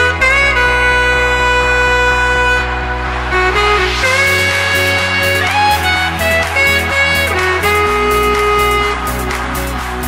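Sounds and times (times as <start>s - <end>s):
steady bass: 0.0s - 10.0s.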